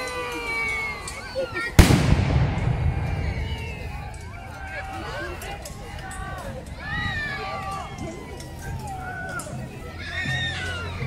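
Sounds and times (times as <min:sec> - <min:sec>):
cannon shot with rumble: 0:01.8 - 0:04.2.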